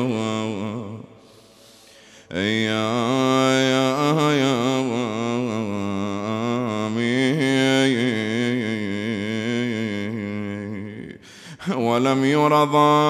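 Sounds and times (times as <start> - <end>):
man chanting: 0.0 - 1.6, 2.2 - 13.0.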